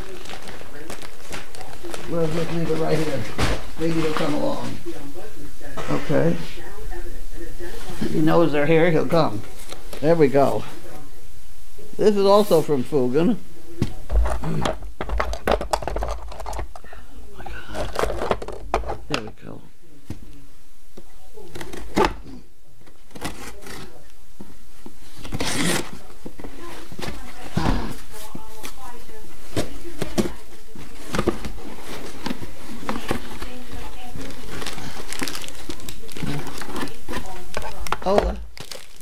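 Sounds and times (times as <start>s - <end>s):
packing paper rustling: 0.0s - 4.8s, 25.0s - 39.0s.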